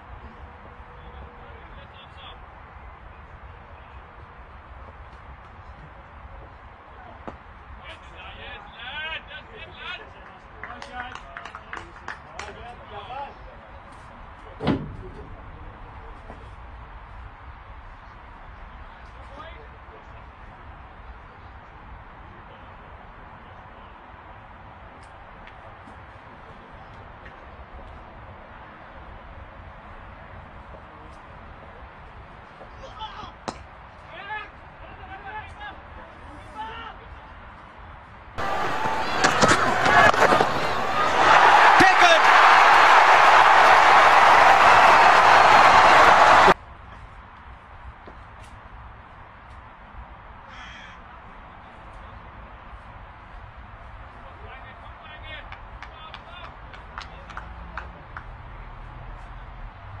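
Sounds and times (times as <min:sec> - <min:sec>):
faint voices: 0:38.4 - 0:46.5.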